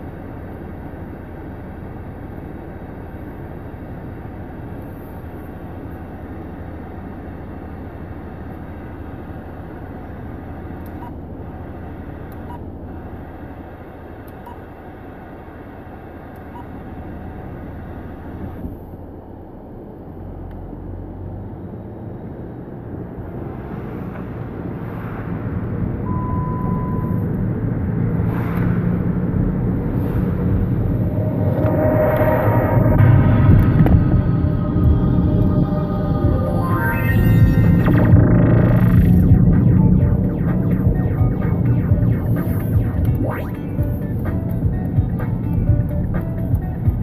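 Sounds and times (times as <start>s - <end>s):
car cabin road and engine rumble: 0.0s - 47.0s.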